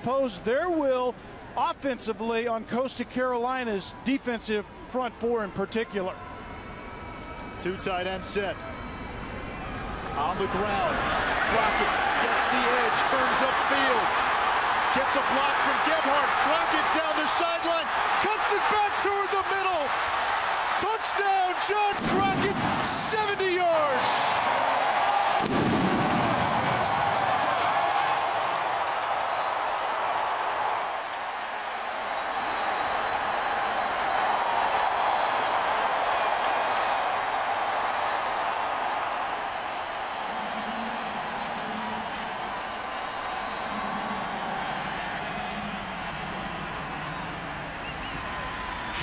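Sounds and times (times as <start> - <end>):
stadium crowd cheering: 5.2 - 49.0.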